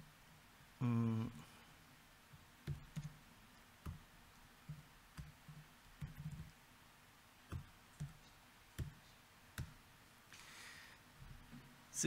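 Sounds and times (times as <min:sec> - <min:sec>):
laptop keystrokes: 0:02.6 - 0:03.2, 0:07.5 - 0:08.2, 0:09.6 - 0:09.8.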